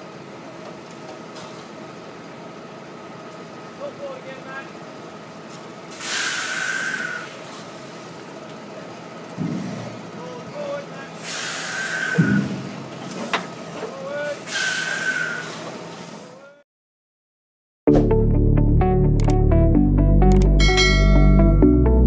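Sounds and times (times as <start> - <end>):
trailer machinery running: 0.0 - 16.4
short hisses: 5.9 - 8.0, 11.2 - 12.6, 14.4 - 16.1.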